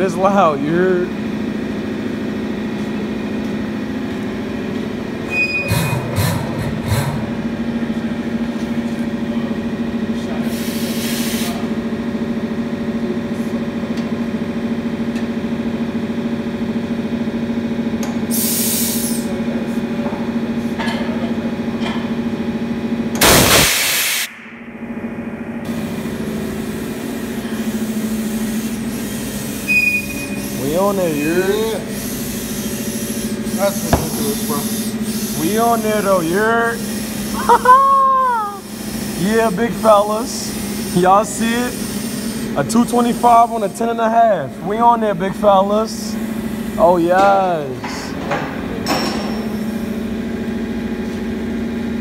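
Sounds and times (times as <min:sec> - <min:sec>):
steady mechanical hum: 0:00.0 - 0:52.0
compressed air hisses: 0:10.4 - 0:11.7, 0:18.3 - 0:19.3, 0:23.2 - 0:24.3, 0:30.3 - 0:37.5, 0:38.6 - 0:43.6
loud air blast: 0:10.4 - 0:11.7, 0:18.3 - 0:19.3, 0:23.2 - 0:24.8, 0:31.8 - 0:36.2.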